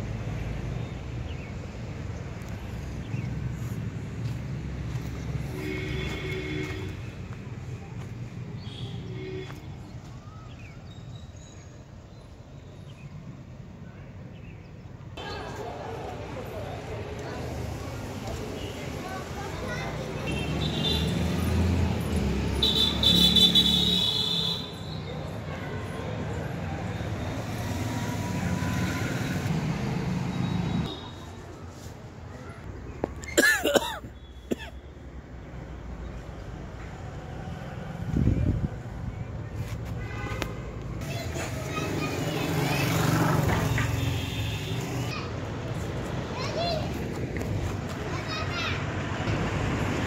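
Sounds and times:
background traffic noise: 0:00.0 - 0:50.0.

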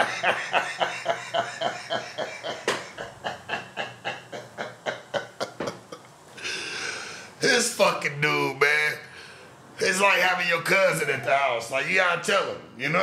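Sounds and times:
man laughing hard: 0:00.0 - 0:06.0.

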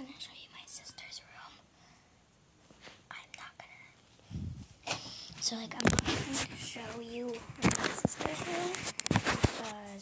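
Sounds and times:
girl whispering: 0:00.0 - 0:01.6, 0:03.1 - 0:04.0, 0:05.1 - 0:08.9.

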